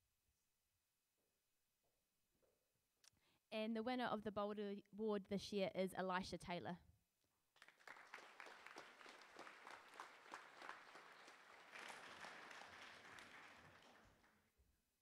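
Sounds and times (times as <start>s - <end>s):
faint audience applause: 7.6s - 14.5s.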